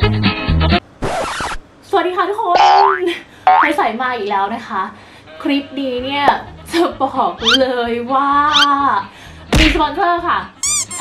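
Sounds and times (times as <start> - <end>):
cartoon boing sound effect: 2.6 - 3.7.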